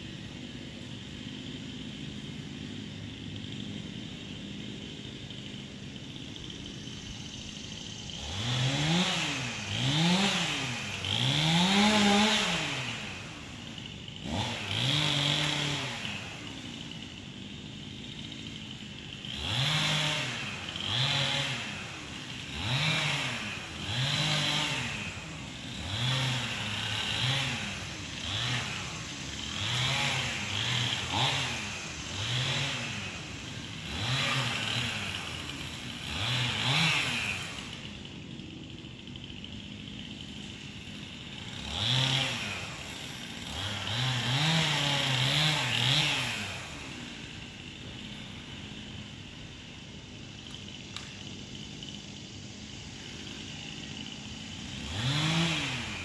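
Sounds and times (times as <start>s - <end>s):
small engine revving: 0.0s - 56.0s.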